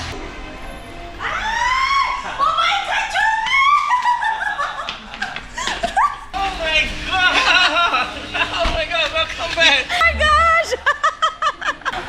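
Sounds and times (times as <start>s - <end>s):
woman laughing excitedly: 2.3s - 6.3s, 9.6s - 12.0s.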